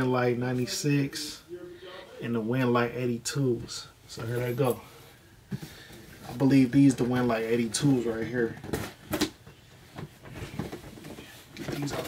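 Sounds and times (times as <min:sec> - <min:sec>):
soft knocks and rustles: 0:08.4 - 0:12.0.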